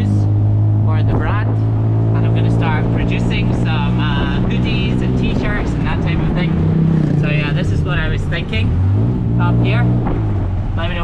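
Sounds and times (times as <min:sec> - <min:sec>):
man talking: 0:00.0 - 0:06.6, 0:07.2 - 0:08.8, 0:09.4 - 0:10.0, 0:10.8 - 0:11.0
tuk-tuk engine running: 0:00.0 - 0:11.0.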